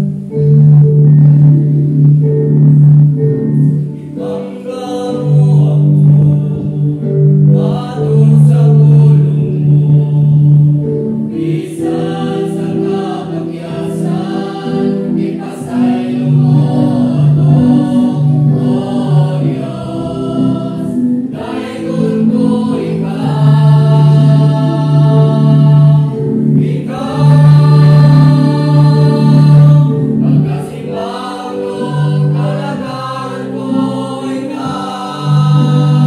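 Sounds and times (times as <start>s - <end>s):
choir singing a hymn: 0.0s - 36.0s.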